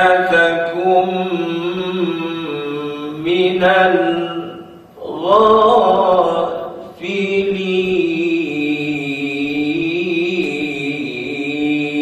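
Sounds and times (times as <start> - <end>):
man reciting in melodic chant: 0.0 - 12.0.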